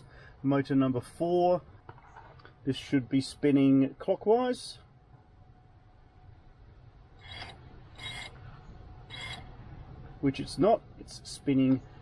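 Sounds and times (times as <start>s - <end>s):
motor rasping bursts: 7.2s - 8.4s, 9.0s - 9.5s.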